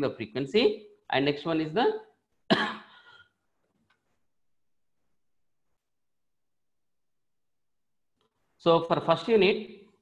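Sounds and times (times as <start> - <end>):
man coughing: 2.5 - 3.3.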